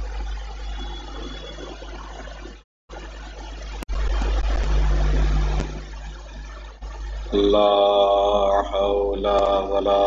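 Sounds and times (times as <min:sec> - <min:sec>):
low microphone hum: 0:00.0 - 0:10.0.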